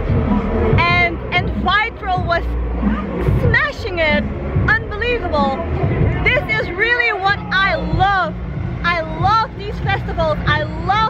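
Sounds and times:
steady low rumble: 0:00.0 - 0:11.0
woman talking animatedly: 0:00.8 - 0:02.5, 0:03.2 - 0:05.6, 0:06.2 - 0:11.0.

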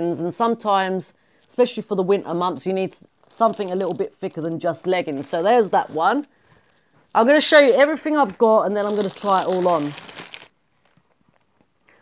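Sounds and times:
plastic packet crinkling: 0:03.0 - 0:06.4, 0:08.0 - 0:11.6.

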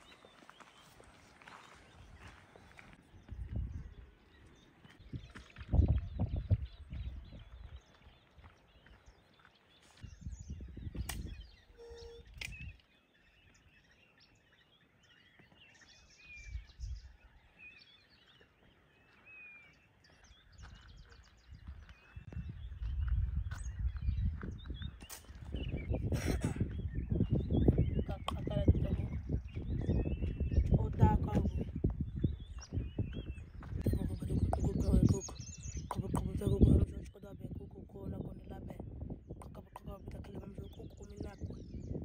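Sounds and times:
small birds chirping: 0:00.0 - 0:42.0.

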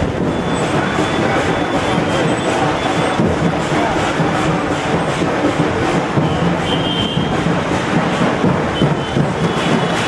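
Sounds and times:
many overlapping voices: 0:00.0 - 0:10.0
traffic: 0:00.0 - 0:10.0.

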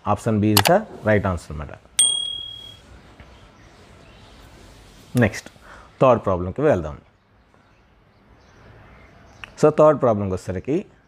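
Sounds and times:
bright bell-like ding: 0:02.0 - 0:02.8.

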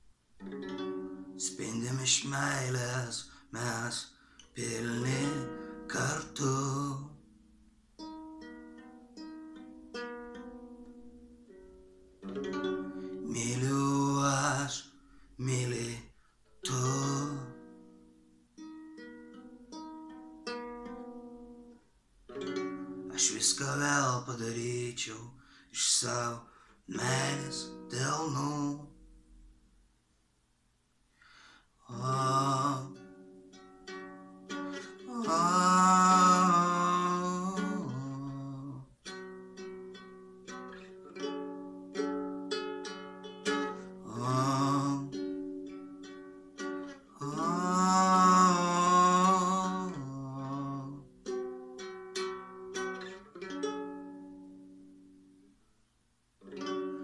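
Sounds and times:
nylon-string guitar: 0:00.0 - 0:29.8, 0:31.2 - 0:55.7, 0:56.4 - 0:57.0
man singing a long note: 0:01.4 - 0:07.2, 0:13.2 - 0:17.6, 0:23.1 - 0:28.9, 0:31.8 - 0:33.0, 0:35.0 - 0:38.9, 0:44.0 - 0:45.2, 0:47.2 - 0:51.1.

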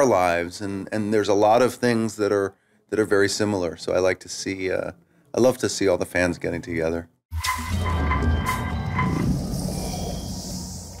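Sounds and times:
low whoosh: 0:07.4 - 0:11.0
chiming notes: 0:07.5 - 0:09.3.

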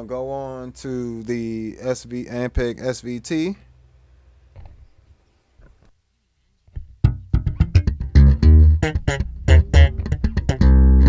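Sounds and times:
electric bass guitar plucked notes: 0:06.8 - 0:11.0.

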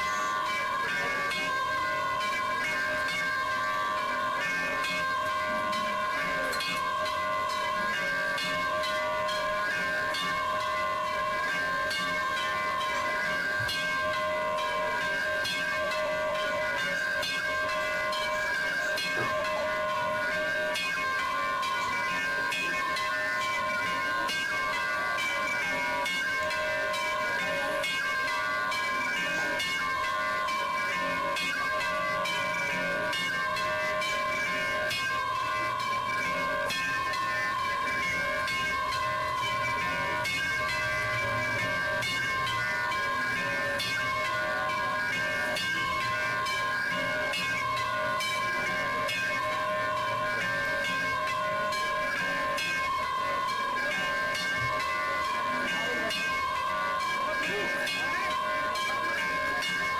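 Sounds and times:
temple bells ringing rapidly: 0:00.0 - 0:59.9.

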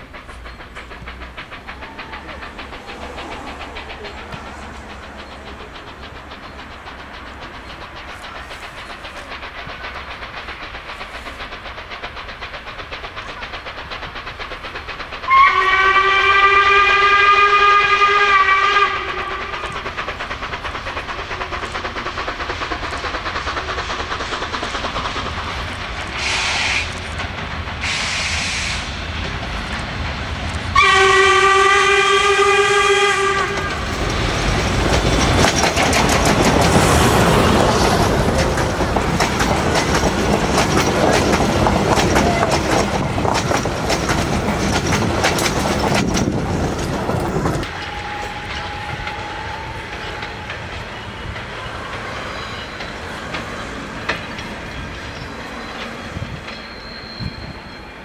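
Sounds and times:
steam hisses: 0:00.0 - 0:58.0
train running on rails: 0:00.0 - 0:58.0
steam whistle blasts: 0:15.3 - 0:19.7, 0:30.7 - 0:33.9, 0:47.7 - 0:50.7.

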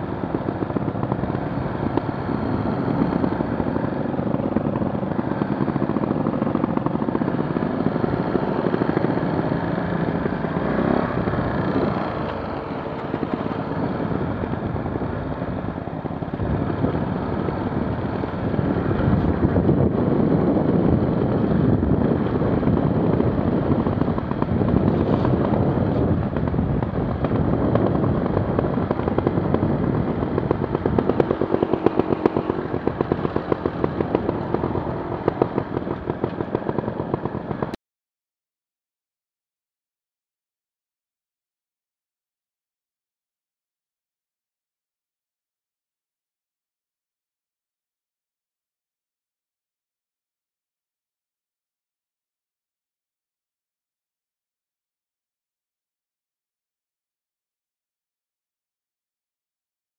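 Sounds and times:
motorcycle engine running: 0:00.0 - 0:37.8.

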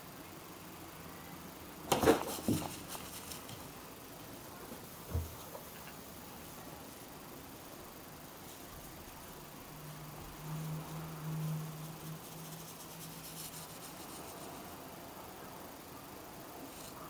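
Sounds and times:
soft thump: 0:05.1 - 0:05.5.

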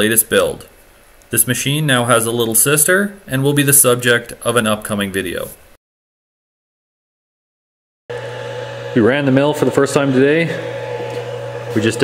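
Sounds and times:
man's voice: 0:01.4 - 0:05.6, 0:08.9 - 0:10.7, 0:11.7 - 0:12.0
steady machine hum: 0:08.1 - 0:12.0.

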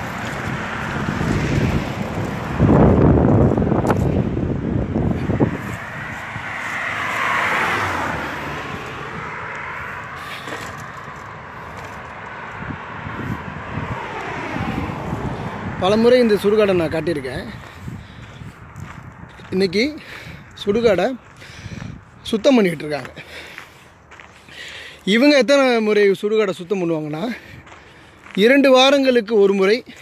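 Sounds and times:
wind buffeting microphone: 0:00.0 - 0:24.5, 0:27.0 - 0:28.4.

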